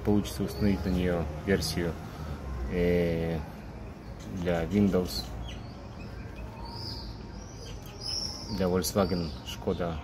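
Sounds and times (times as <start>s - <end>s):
faint high bird chirps: 0.0s - 10.0s.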